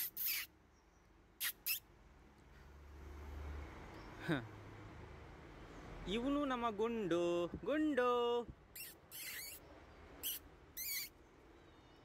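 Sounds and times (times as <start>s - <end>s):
kittens mewing: 8.8s - 9.6s, 10.2s - 11.1s.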